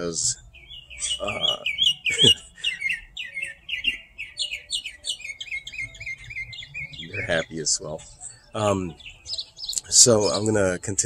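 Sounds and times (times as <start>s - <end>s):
bird chirping rapidly: 0.0s - 11.0s.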